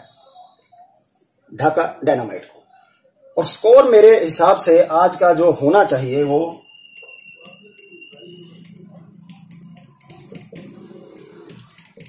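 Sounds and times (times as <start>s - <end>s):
marker squeaking on whiteboard: 6.4s - 12.0s.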